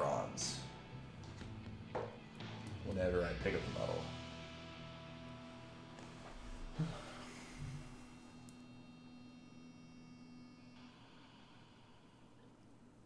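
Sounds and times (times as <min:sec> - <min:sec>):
faint steady tones: 0:00.0 - 0:13.0.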